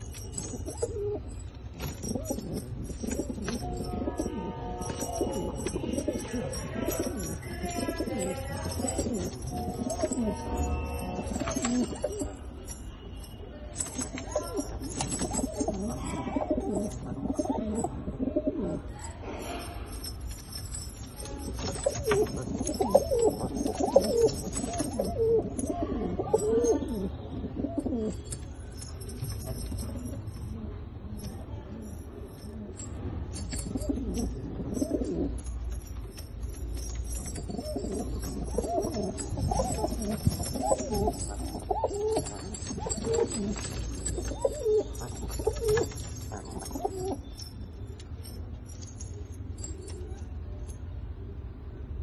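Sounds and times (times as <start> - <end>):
pigeons cooing: 0.1 - 12.4, 14.0 - 18.9, 21.4 - 28.8, 33.4 - 35.6, 36.8 - 47.4.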